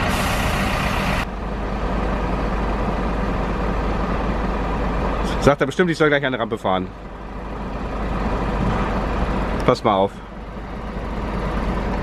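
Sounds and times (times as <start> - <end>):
air brakes hissing: 0.0 - 1.2
diesel engine running: 0.0 - 12.0.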